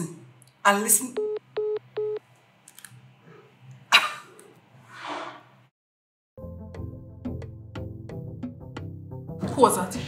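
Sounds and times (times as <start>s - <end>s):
phone call-ended beeps: 1.2s - 2.2s.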